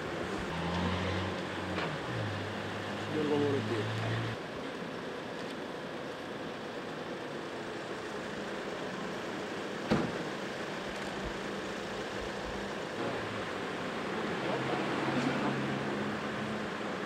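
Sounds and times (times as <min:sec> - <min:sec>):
street traffic noise: 0:00.0 - 0:17.0.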